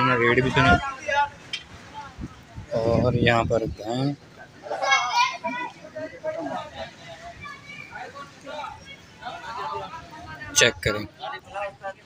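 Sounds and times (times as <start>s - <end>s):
child-like voice talking: 4.7s - 5.8s.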